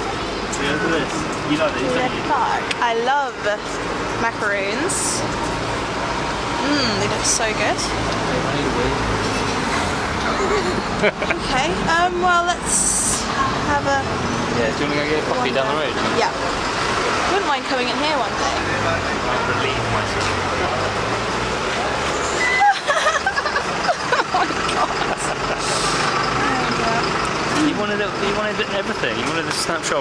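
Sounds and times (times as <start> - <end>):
nearby vehicle engine hum: 0.0 - 30.0
street traffic rumble: 0.0 - 30.0
faint voices: 6.5 - 30.0.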